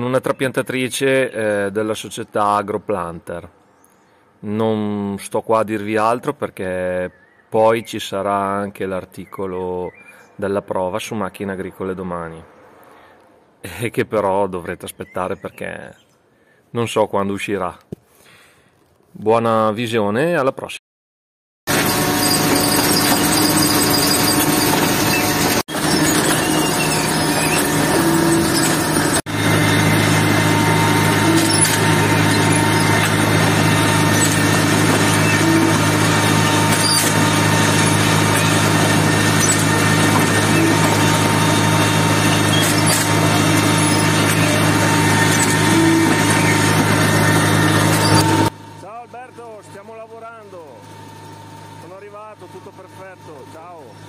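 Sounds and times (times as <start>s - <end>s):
machine mechanical hum: 21.7s - 54.0s
thin steady whine: 36.4s - 54.0s.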